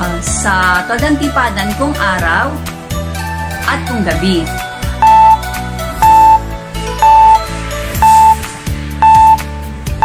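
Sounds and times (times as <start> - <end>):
background music: 0.0 - 10.0
high timer beep: 5.0 - 5.4, 6.0 - 6.4, 7.0 - 7.4, 8.0 - 8.4, 9.0 - 9.4.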